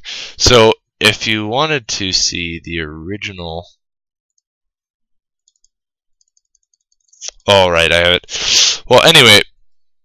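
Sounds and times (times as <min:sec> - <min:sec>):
faint computer mouse clicks: 0:05.4 - 0:07.4.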